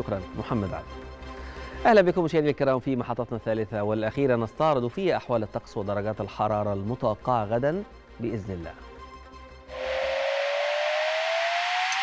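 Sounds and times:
rising whoosh with gliding tone: 9.7s - 12.0s.

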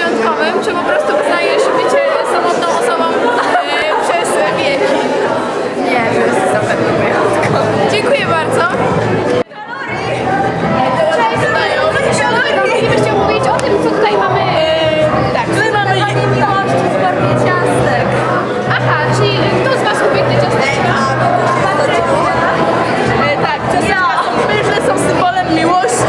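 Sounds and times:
chatter of voices in a room: 0.0s - 26.0s.

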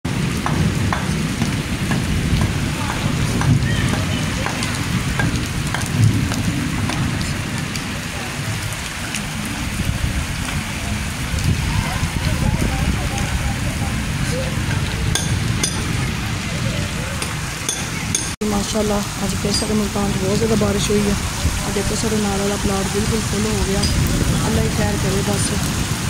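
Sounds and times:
sharp ticks of raindrops: 0.1s - 16.4s, 17.2s - 26.0s
heavy rain on flooded street: 0.1s - 26.0s.

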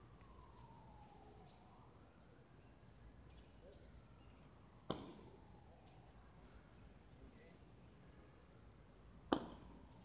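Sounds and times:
faint open-air background: 0.0s - 10.0s
ball striking hard crack: 4.9s - 5.2s, 9.3s - 9.6s.

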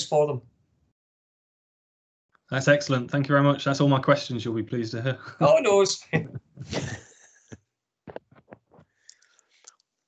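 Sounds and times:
breathy voice murmurs: 6.0s - 8.2s.

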